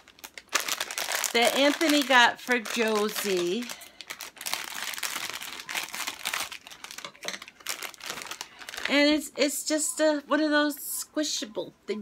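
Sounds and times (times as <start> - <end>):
plastic packaging crinkling: 0.0 - 9.2.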